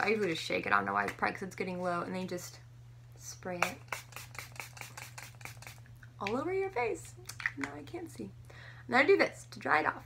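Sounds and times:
spray bottle misting: 0:03.7 - 0:05.8.

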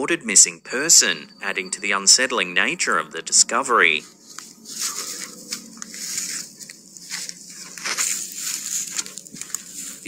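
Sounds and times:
rustling and crunching brush: 0:04.0 - 0:10.0.

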